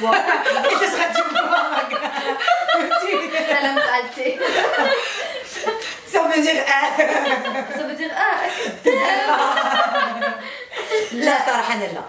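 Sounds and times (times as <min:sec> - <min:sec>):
women laughing: 0:00.0 - 0:06.0, 0:06.7 - 0:11.3.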